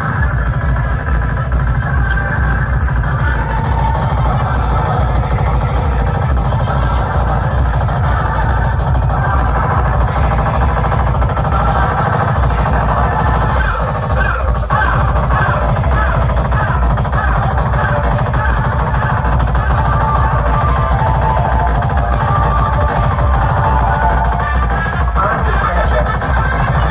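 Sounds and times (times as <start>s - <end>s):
loud electronic dance music: 0.0s - 26.9s
repeating synth figure: 0.0s - 26.9s.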